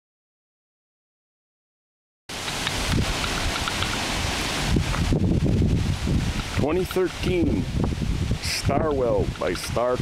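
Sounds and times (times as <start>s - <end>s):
wind buffeting microphone: 2.4s - 10.0s.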